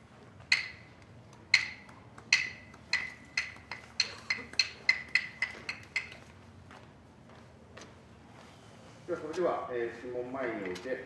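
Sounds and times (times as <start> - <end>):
wooden clappers clacking: 0.4 - 6.4.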